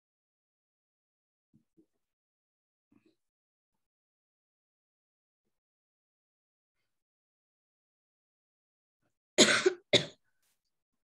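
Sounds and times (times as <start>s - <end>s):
person coughing: 9.4s - 10.2s.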